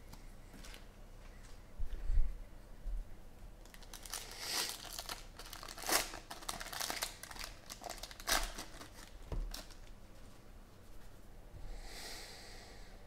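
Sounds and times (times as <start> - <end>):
foil wrapper crinkling and tearing: 3.6 - 10.0.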